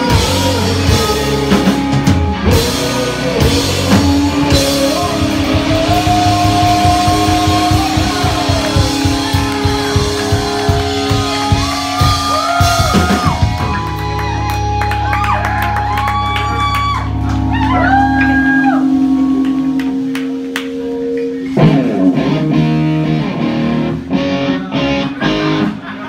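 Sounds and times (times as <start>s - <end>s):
person singing long notes: 0.0s - 13.2s
fast drum beat: 0.0s - 14.7s
bass guitar: 0.0s - 26.0s
electric guitars: 0.0s - 26.0s.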